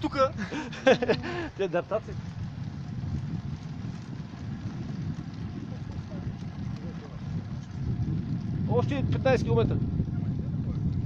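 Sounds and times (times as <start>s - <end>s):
bicycle road noise on asphalt: 0.0s - 11.0s
wind rumbling on microphone: 0.0s - 11.0s.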